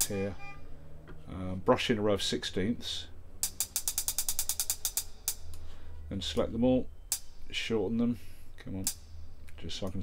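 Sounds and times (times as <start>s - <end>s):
closed hi-hat ticking: 3.4s - 10.0s.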